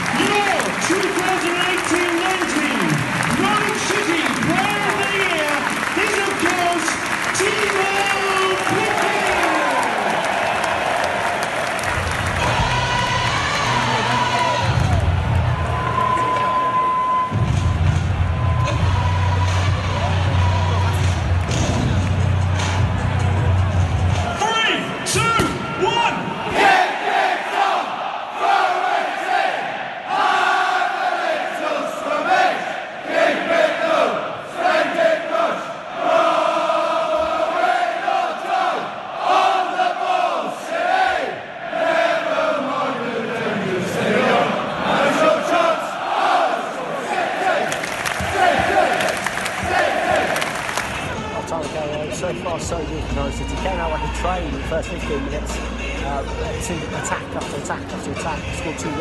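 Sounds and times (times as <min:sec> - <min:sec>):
large crowd noise and voices: 0:00.0 - 0:59.0
music over loudspeakers: 0:12.0 - 0:15.5, 0:17.3 - 0:26.3, 0:49.5 - 0:59.0
crowd singing a chant: 0:26.3 - 0:51.1.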